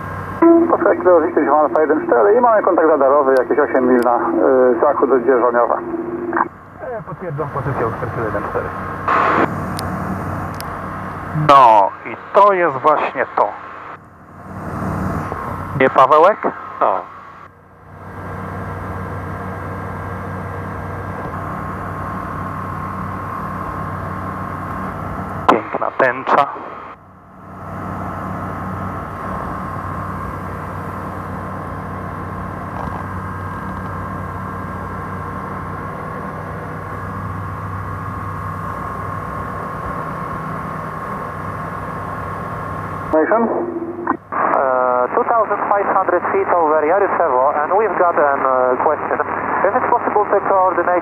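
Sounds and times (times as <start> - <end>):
aircraft engine and propeller droning: 0.0 - 51.0
thin steady whine: 0.0 - 51.0
pilot speaking over radio: 0.4 - 9.5, 11.4 - 13.8, 15.8 - 17.2, 25.5 - 26.9, 43.2 - 51.0.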